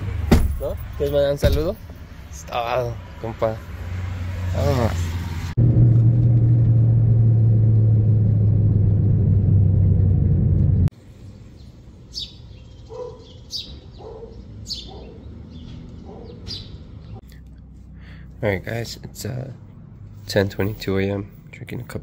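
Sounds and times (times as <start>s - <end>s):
car engine and road noise: 0.0s - 22.0s
small birds chirping: 11.4s - 18.2s.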